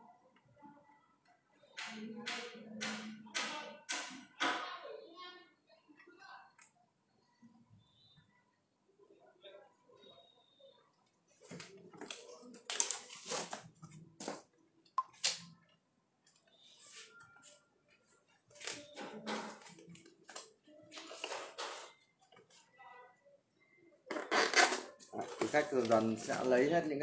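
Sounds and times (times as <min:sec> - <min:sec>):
plastic wrap rustling and crinkling: 0:11.4 - 0:14.5, 0:24.2 - 0:27.0.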